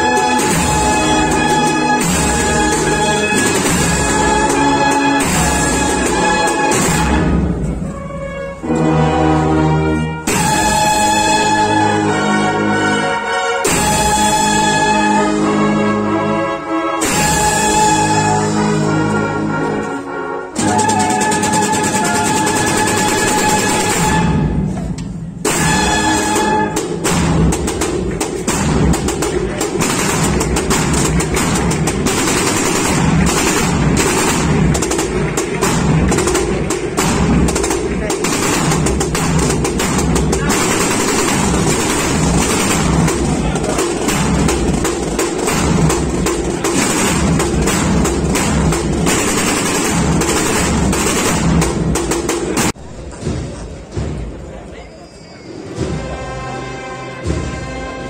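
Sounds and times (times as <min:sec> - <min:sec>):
firecrackers crackling and banging: 0:00.0 - 0:08.1, 0:10.2 - 0:11.7, 0:17.0 - 0:18.4, 0:20.6 - 0:54.5
brass band playing: 0:00.0 - 0:53.0, 0:55.6 - 0:58.0
crowd noise: 0:00.0 - 0:58.0.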